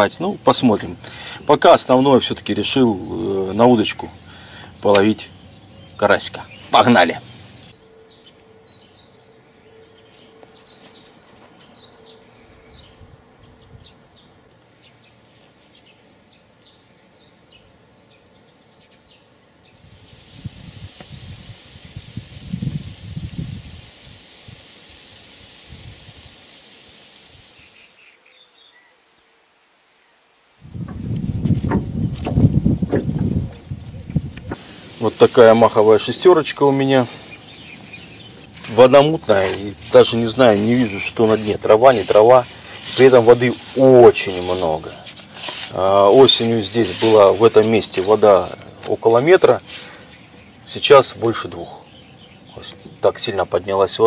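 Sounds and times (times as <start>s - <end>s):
birds chirping: 0.0s - 26.8s, 27.4s - 29.2s, 30.0s - 54.0s
steady high hiss: 0.0s - 54.0s.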